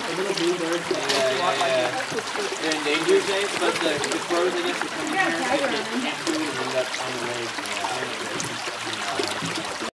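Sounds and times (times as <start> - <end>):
creek gurgling over pebbles: 0.0 - 9.9.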